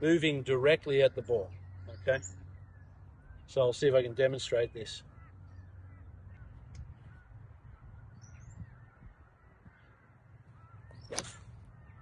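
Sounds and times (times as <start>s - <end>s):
faint bird calls: 0.0s - 12.0s
low outdoor background: 0.0s - 12.0s
golf club striking ball: 10.9s - 11.6s.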